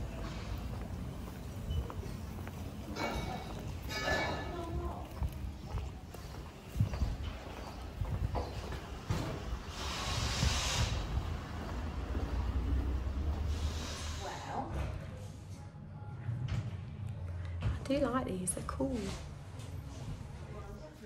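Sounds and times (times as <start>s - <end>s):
footsteps on brick paving: 0.0s - 3.9s, 4.5s - 9.5s
brief hiss: 9.7s - 11.2s.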